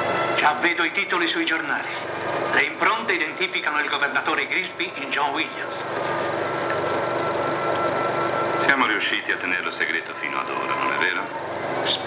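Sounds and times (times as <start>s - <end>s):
film projector clattering: 1.0s - 12.0s.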